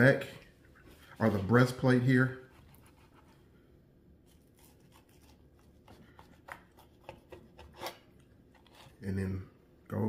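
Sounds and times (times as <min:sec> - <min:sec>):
knife scraping through meat: 0:04.3 - 0:09.0.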